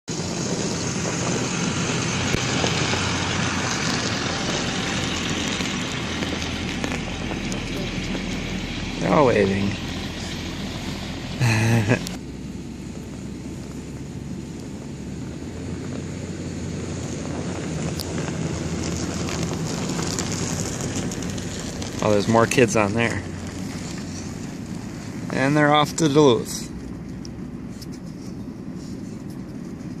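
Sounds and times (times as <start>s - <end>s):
bus engine driving past: 0.1s - 30.0s
van pulling away: 0.1s - 30.0s.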